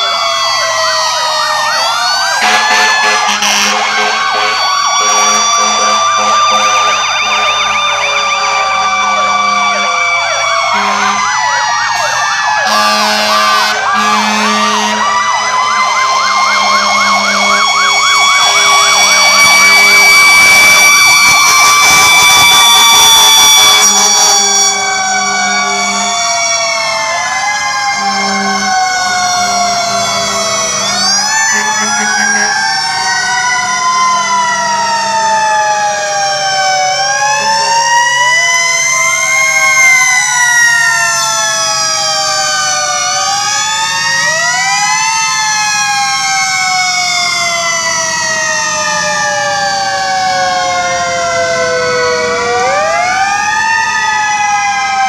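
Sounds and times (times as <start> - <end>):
fire truck sirens wailing: 0.0 - 55.0.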